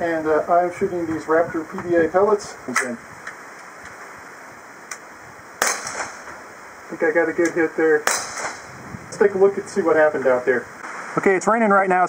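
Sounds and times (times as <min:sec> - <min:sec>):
air pistol shot: 0:05.6 - 0:06.4, 0:08.0 - 0:08.8.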